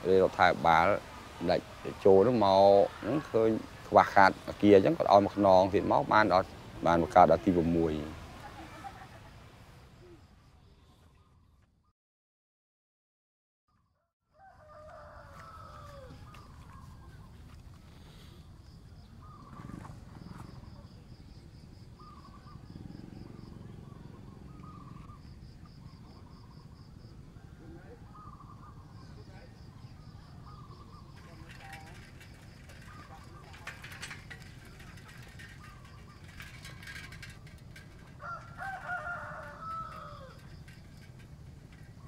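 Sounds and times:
rooster crowing: 0:14.3 - 0:16.4, 0:37.9 - 0:40.8
pulsing insect trill: 0:20.2 - 0:42.0
distant animal call: 0:21.9 - 0:42.0.

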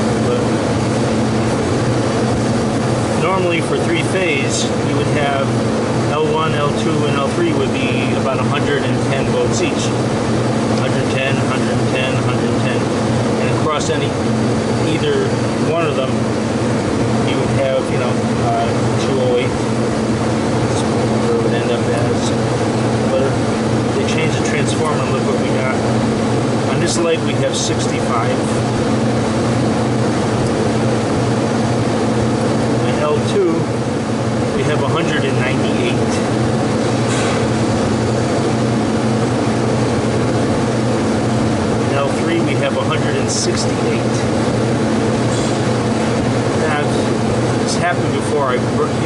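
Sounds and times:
condensing unit fans droning: 0:00.0 - 0:49.0
low electrical hum: 0:00.0 - 0:49.0.

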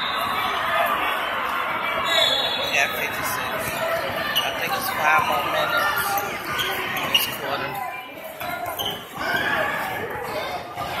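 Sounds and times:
people talking in gymnasium: 0:00.0 - 0:11.0.

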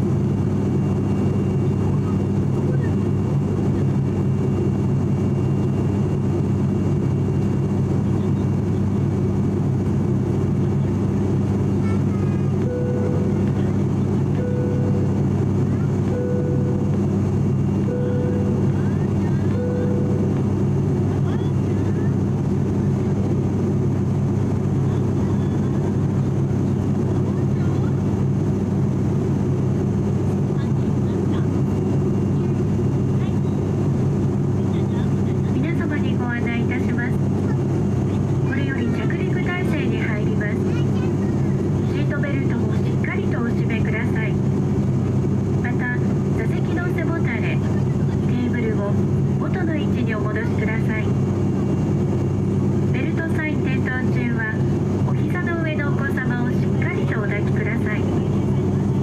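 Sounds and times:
turboprop engine drone in cabin: 0:00.0 - 0:59.0
announcement over pa: 0:45.6 - 0:51.2, 0:52.9 - 0:58.8.

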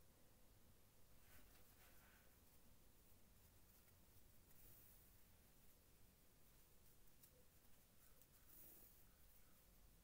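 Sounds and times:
soft rustling of yarn: 0:00.0 - 0:10.0.

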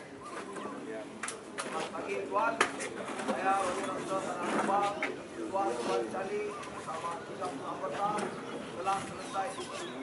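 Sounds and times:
birds calling: 0:00.0 - 0:01.5, 0:03.8 - 0:10.0.

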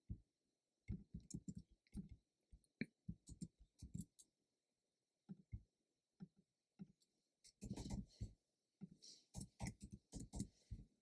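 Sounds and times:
computer mouse and keyboard clicks: 0:00.9 - 0:02.2, 0:03.1 - 0:04.3, 0:06.2 - 0:08.1, 0:09.4 - 0:10.6.

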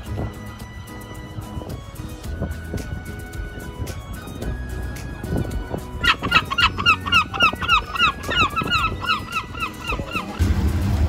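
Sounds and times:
gull yelping call: 0:05.4 - 0:10.4
racing car engine rumble: 0:10.3 - 0:11.0.

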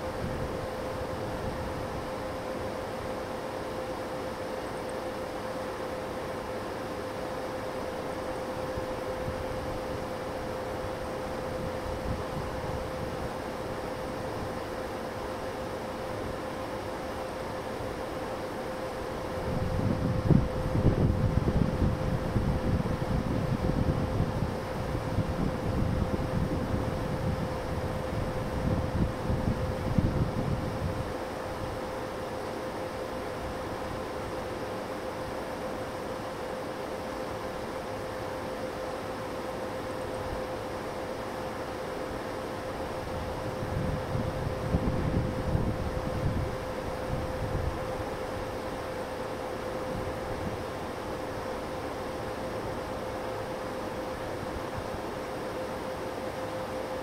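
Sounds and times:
faint steady hum: 0:00.0 - 0:57.0
steady hiss: 0:00.0 - 0:57.0
wind buffeting microphone: 0:19.4 - 0:31.1, 0:43.0 - 0:48.1.

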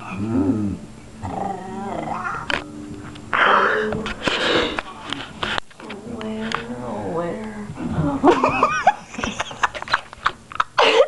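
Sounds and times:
woman growling playfully: 0:00.0 - 0:02.4, 0:03.3 - 0:04.8, 0:07.8 - 0:08.7.

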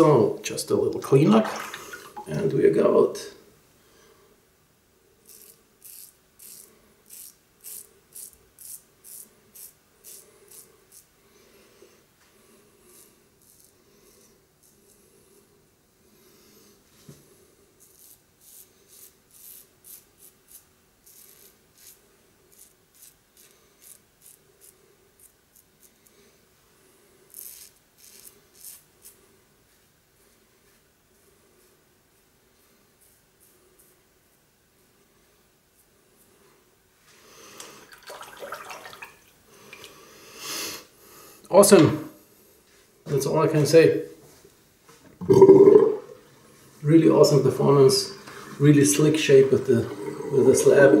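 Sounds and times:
razor scraping stubble: 0:05.2 - 0:11.1, 0:17.8 - 0:26.1, 0:27.3 - 0:29.2.

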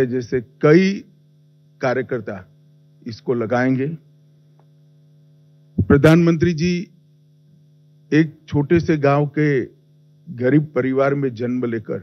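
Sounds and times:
man speaking: 0:00.0 - 0:01.0, 0:01.8 - 0:02.5, 0:03.1 - 0:04.0, 0:05.8 - 0:06.9, 0:08.1 - 0:09.7, 0:10.3 - 0:12.0
electrical mains hum: 0:00.0 - 0:12.0.

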